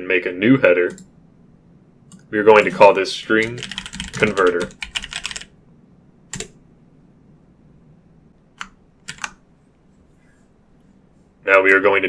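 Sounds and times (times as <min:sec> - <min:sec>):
computer keyboard typing: 0:00.9 - 0:01.1, 0:02.1 - 0:05.5, 0:06.3 - 0:06.6, 0:08.6 - 0:09.4.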